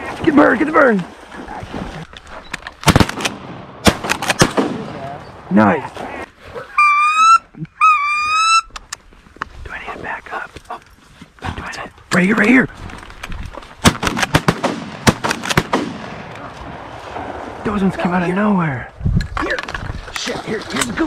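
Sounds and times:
shotgun shots: 0:02.8 - 0:05.1, 0:13.8 - 0:17.3.

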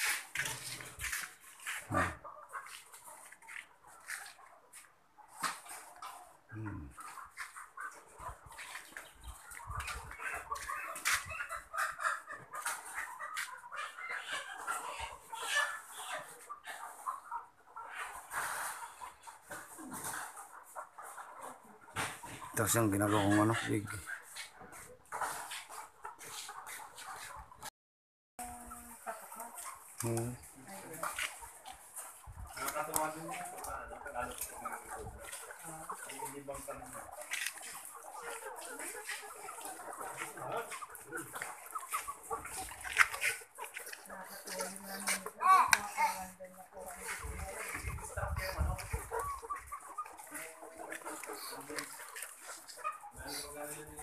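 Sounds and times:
hens clucking and calling: 0:00.0 - 0:27.7, 0:28.4 - 0:54.0.

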